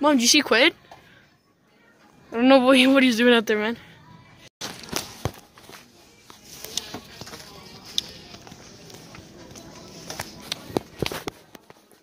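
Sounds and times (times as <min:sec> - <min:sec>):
faint background music: 0:00.0 - 0:12.0
faint background voices: 0:03.8 - 0:12.0
clicks and knocks on microphone: 0:10.1 - 0:11.9.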